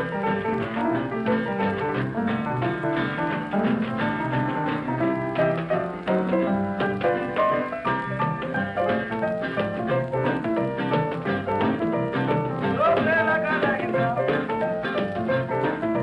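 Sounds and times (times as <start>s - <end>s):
blues piano playing: 0.0s - 16.0s.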